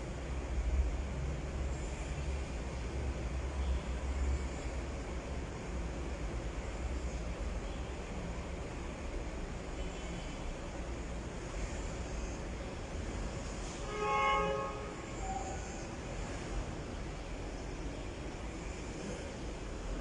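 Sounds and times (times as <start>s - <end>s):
horn blast: 13.8s - 15.5s.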